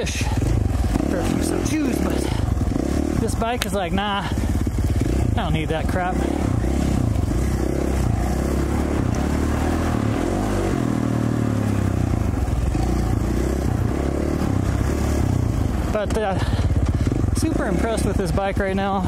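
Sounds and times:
dirt bike engine running: 0:00.0 - 0:19.0.

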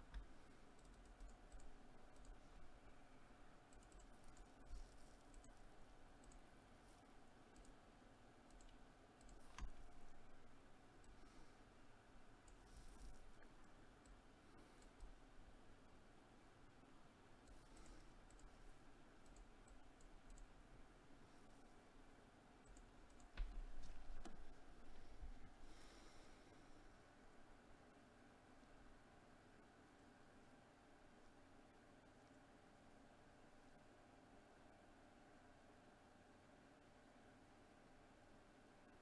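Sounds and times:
faint clicks: 0:00.0 - 0:02.7, 0:03.7 - 0:07.8, 0:08.4 - 0:11.3, 0:17.4 - 0:20.6, 0:22.6 - 0:24.5.

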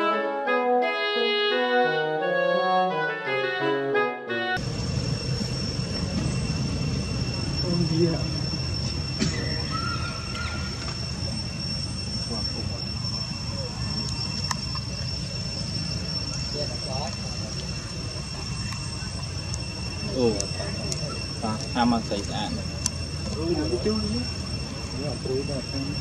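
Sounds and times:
high-pitched insect drone: 0:04.6 - 0:26.0
low rumble: 0:04.6 - 0:26.0.

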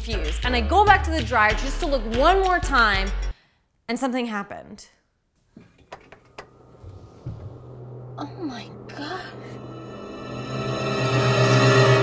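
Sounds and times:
low drone: 0:06.6 - 0:12.0.

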